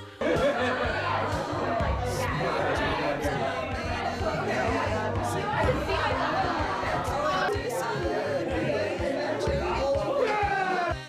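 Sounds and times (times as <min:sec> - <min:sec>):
background music: 0:00.0 - 0:11.0
people talking at once: 0:00.2 - 0:11.0.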